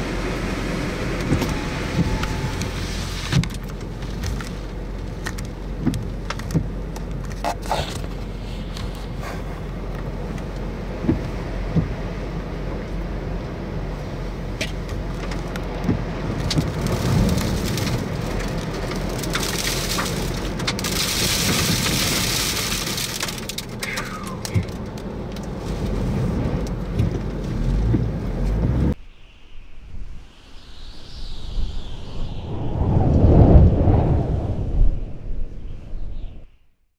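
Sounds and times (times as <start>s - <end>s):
storm wind and rain: 0.0s - 36.5s
whoosh: 28.9s - 36.5s.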